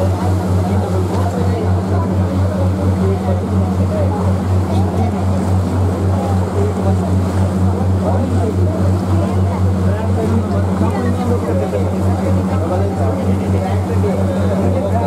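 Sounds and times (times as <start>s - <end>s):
motorboat engine drone: 0.0s - 15.0s
people talking: 0.0s - 15.0s.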